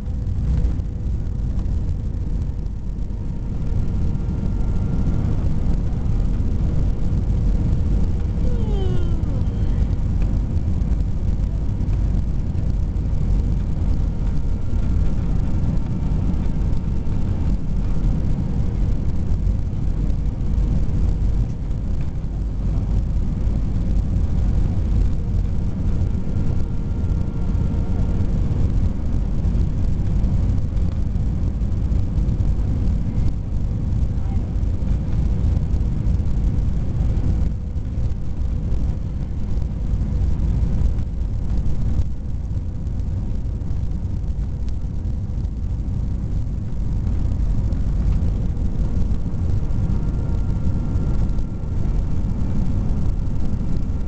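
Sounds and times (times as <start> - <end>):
aircraft cabin engine roar: 0.0 - 54.0
faint engine tones: 0.0 - 54.0.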